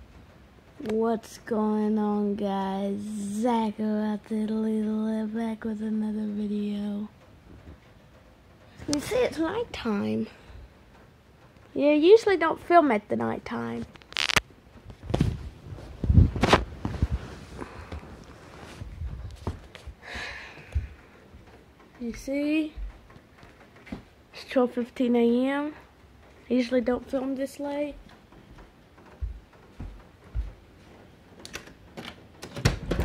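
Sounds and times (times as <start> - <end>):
sharp clicks: 13.8 - 14.5
muffled bumps: 13.8 - 20.0
footsteps low thuds: 14.8 - 20.0, 22.1 - 24.2, 27.9 - 31.1.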